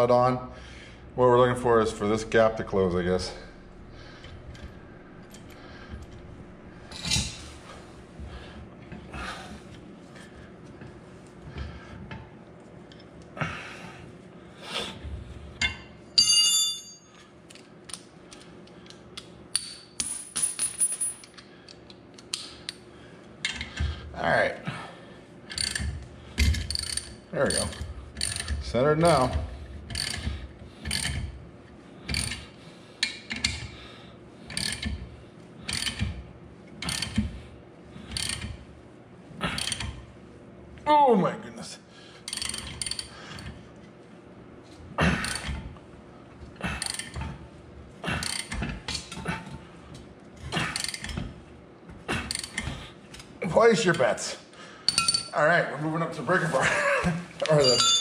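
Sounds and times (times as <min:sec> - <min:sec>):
ratchet wrench clicking: 0:25.5 - 0:25.9, 0:26.5 - 0:28.6, 0:29.9 - 0:31.2, 0:34.5 - 0:34.9, 0:38.1 - 0:38.5.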